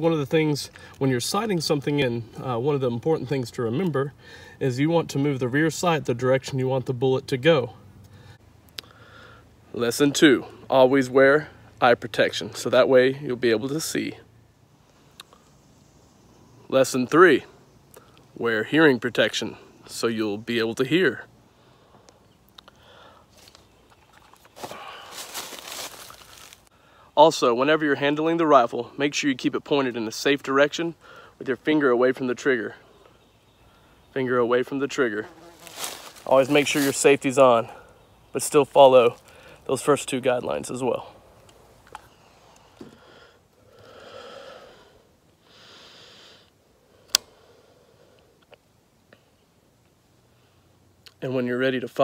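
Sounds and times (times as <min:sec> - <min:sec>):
long breaths: 0:04.2 - 0:04.6, 0:08.0 - 0:09.6, 0:21.5 - 0:23.4, 0:24.6 - 0:25.4, 0:26.7 - 0:27.2, 0:31.0 - 0:31.4, 0:42.1 - 0:48.4
rustling and rubbing: 0:23.3 - 0:26.7, 0:35.3 - 0:37.3.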